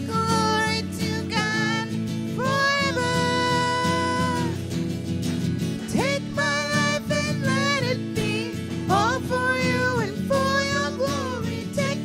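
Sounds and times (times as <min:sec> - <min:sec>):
person singing: 0:00.0 - 0:04.7, 0:05.8 - 0:12.0
acoustic guitar: 0:00.0 - 0:12.0
electric bass: 0:00.0 - 0:12.0.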